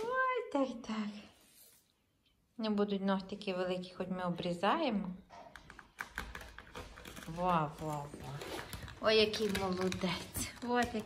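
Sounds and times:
woman's voice: 0.0s - 1.4s, 2.6s - 5.3s, 7.2s - 11.0s.

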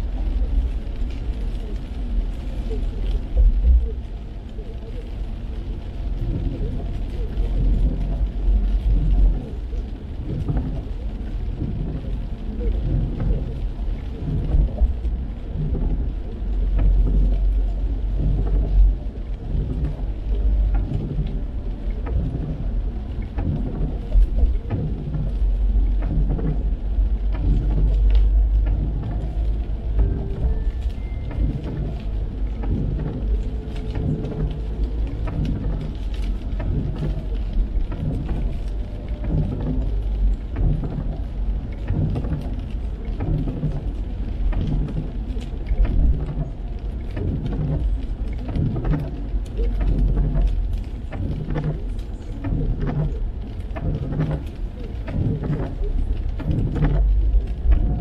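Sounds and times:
rain on windshield: 0.0s - 58.0s
tyres rumbling on wet road: 0.0s - 58.0s.

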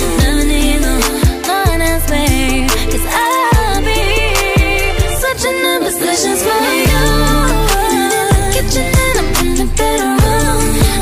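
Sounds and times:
deep bass: 0.0s - 5.3s, 6.9s - 11.0s
drum beat: 0.0s - 5.3s, 6.9s - 11.0s
singer holding bending notes: 0.0s - 11.0s.

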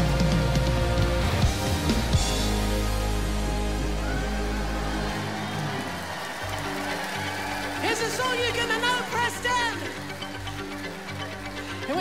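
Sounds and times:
rock band holding chords: 0.0s - 7.8s.

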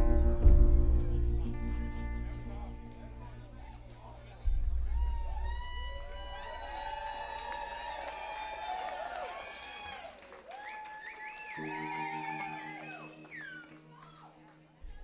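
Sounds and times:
live band music: 0.0s - 5.1s.

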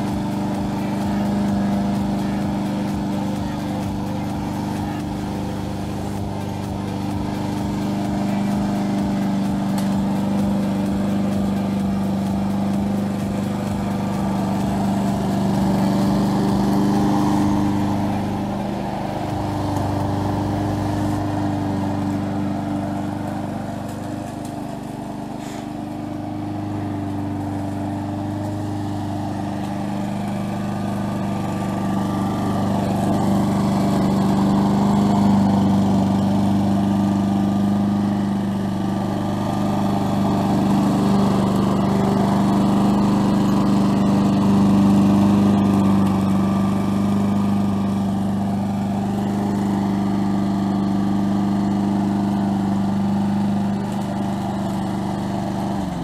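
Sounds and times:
lawn mower engine running: 0.0s - 56.0s.

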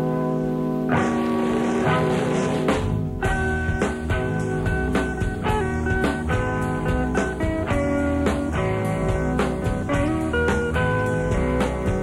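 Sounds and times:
rock band playing: 0.9s - 12.0s.

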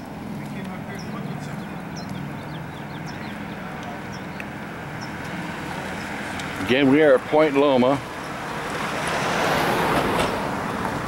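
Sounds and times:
car engine humming: 0.0s - 11.0s
street traffic: 0.0s - 11.0s.

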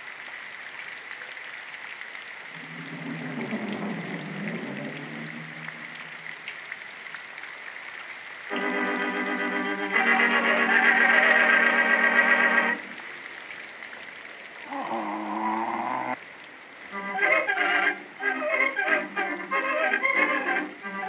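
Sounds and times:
film hiss and whine: 2.5s - 7.0s, 8.5s - 13.4s.

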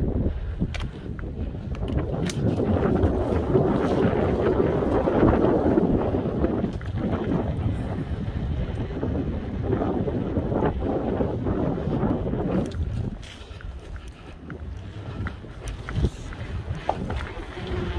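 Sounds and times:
wind buffeting microphone: 0.0s - 17.9s.

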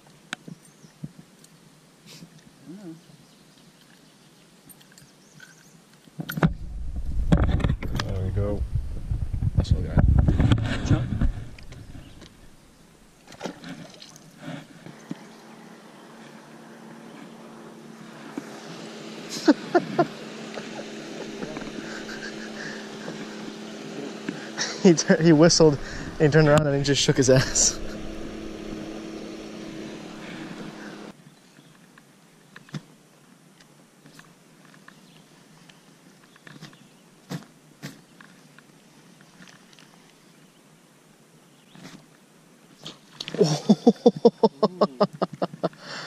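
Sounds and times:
camera handling rumble: 6.2s - 12.6s
distant boat motor humming: 6.5s - 31.2s.

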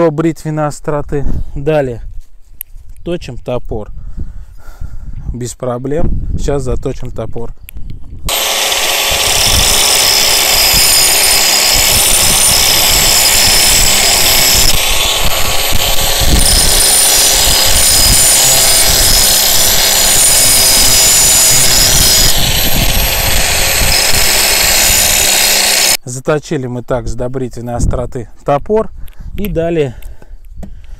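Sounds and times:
angle grinder grinding axe blade: 8.3s - 26.0s.

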